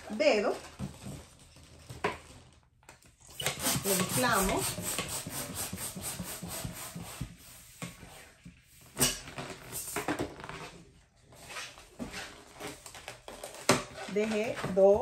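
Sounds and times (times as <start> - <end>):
hand pump inflating balloon: 3.2 - 8.3.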